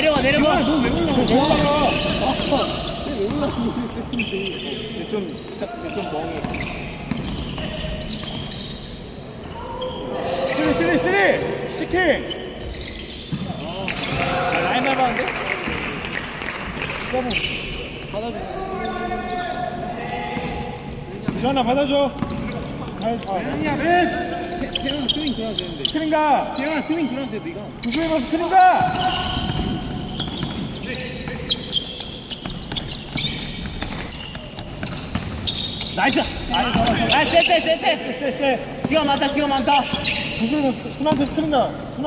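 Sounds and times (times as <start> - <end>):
players calling out: 0.0 - 41.6.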